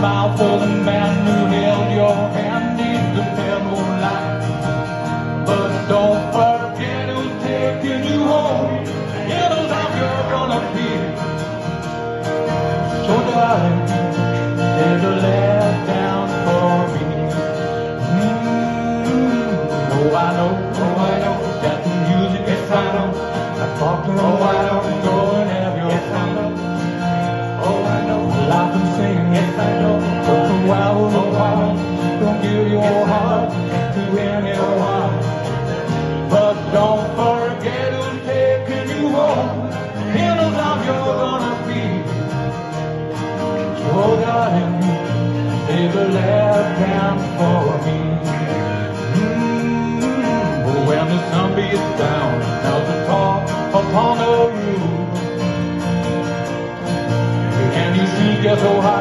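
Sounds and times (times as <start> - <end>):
men singing: 0.0 - 11.7, 12.7 - 42.6, 43.6 - 55.8, 57.5 - 59.0
acoustic guitars strummed: 0.0 - 59.0.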